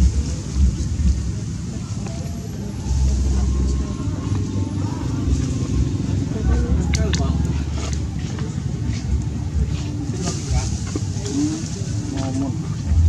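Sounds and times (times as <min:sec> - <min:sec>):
faint distant voices: 0:00.0 - 0:13.0
low rumble: 0:00.0 - 0:13.0.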